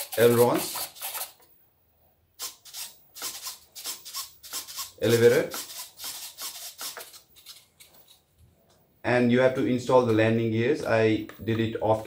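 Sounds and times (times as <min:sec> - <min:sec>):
servos buzzing in rasping bursts: 0:02.4 - 0:08.2.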